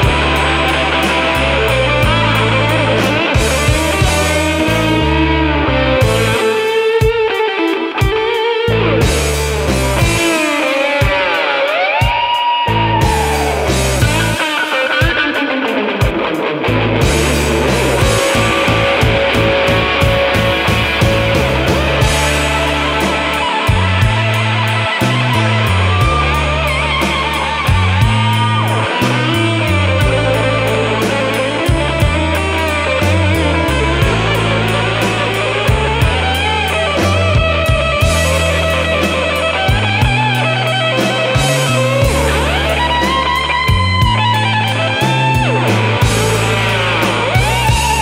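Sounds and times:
stepping bass line: 0.0s - 11.3s, 12.0s - 15.4s, 16.1s - 48.0s
electric blues band playing: 0.0s - 48.0s
electric guitar lead lines: 0.0s - 48.0s
steady drum beat: 0.0s - 48.0s.

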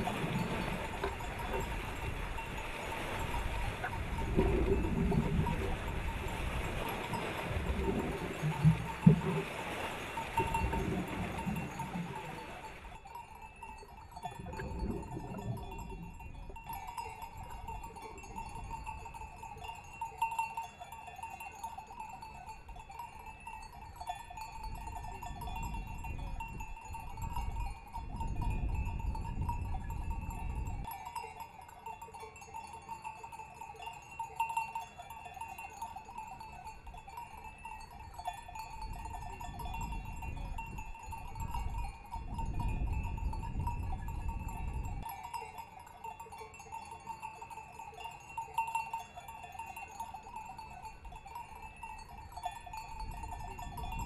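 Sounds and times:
small bells jingling: 0.0s - 54.0s.

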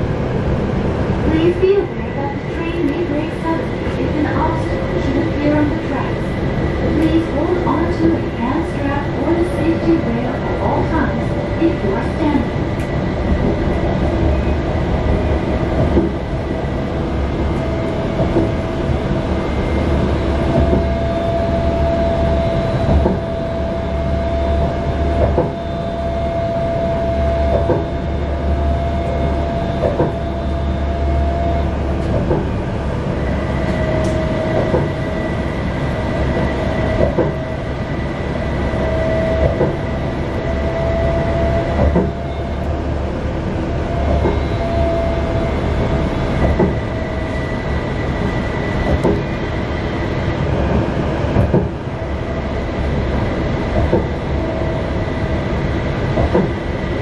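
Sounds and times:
tram rolling noise: 0.0s - 57.0s.

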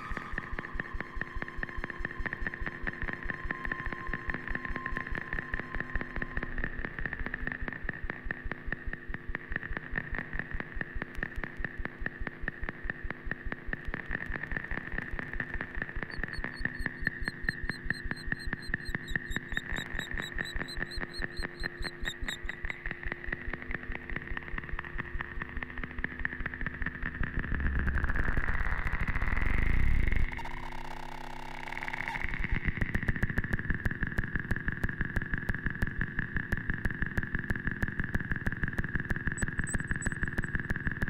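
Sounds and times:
pulsing feedback buzz: 0.0s - 8.0s, 14.5s - 33.7s, 38.6s - 41.0s
wavering high chirps: 16.1s - 22.8s, 39.4s - 40.5s.

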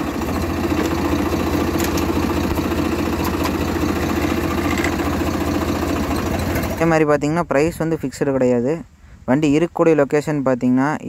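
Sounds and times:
tractor diesel engine idling: 0.0s - 7.8s.

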